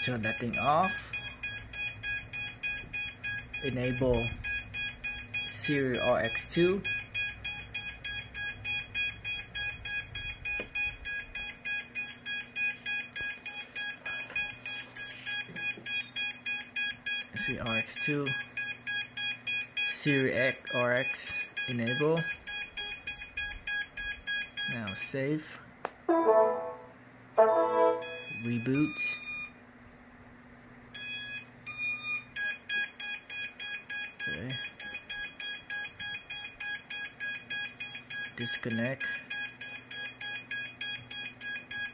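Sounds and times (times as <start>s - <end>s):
rapid steady beeping: 0.0s - 25.1s, 28.0s - 29.4s, 31.0s - 41.9s
short high electronic beeps: 26.1s - 28.4s
electronic beeps: 27.4s - 29.0s.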